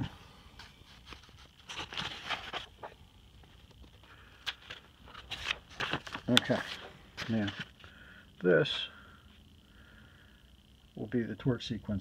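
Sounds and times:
paper pages rustling: 0:00.6 - 0:07.8.

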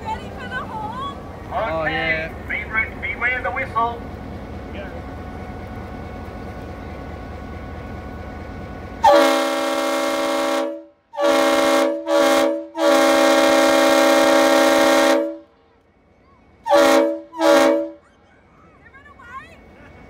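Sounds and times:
low engine rumble: 0:00.0 - 0:20.0
locomotive horn blasts: 0:09.0 - 0:15.5, 0:16.6 - 0:18.0.

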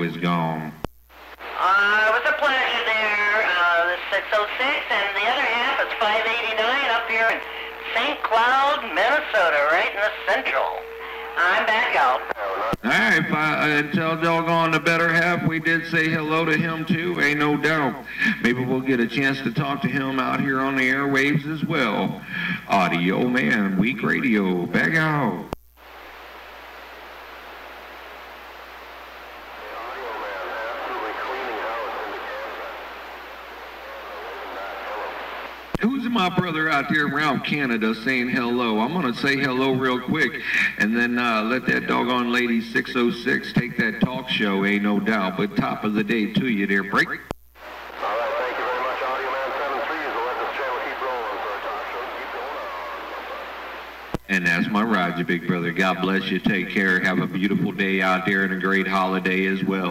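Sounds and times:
radio static hiss: 0:00.0 - 0:59.9
faint voice over radio: 0:01.4 - 0:13.2, 0:29.4 - 0:35.6, 0:47.9 - 0:53.7.

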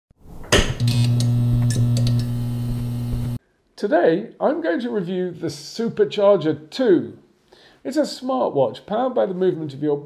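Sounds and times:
steady low hum: 0:00.6 - 0:03.4
man speaking: 0:03.8 - 0:07.2, 0:07.9 - 0:10.0.

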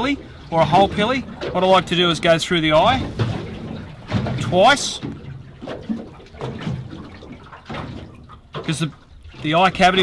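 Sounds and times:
water lapping against boat hull: 0:00.0 - 0:10.0.

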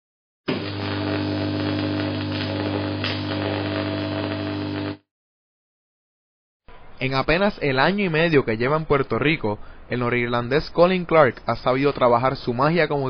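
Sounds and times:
electrical hum with hiss: 0:00.5 - 0:05.0.

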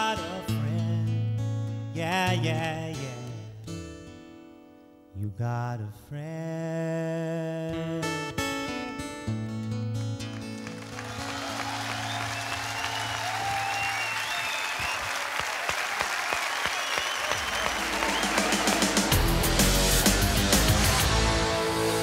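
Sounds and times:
audience applauding and cheering: 0:10.2 - 0:22.0
jingle music with heavy bass: 0:17.7 - 0:22.0.

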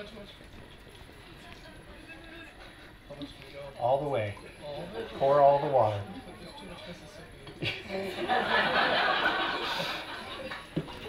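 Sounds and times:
faint murmured voices: 0:00.0 - 0:11.0.

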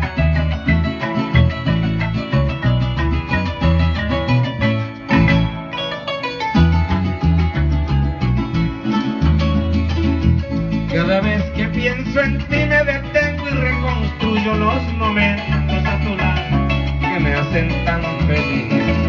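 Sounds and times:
rhythmic bass line: 0:00.0 - 0:19.0.

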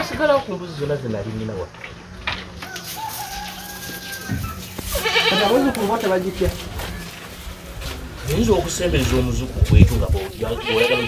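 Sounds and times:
cow crying: 0:03.2 - 0:05.9, 0:10.4 - 0:11.0.

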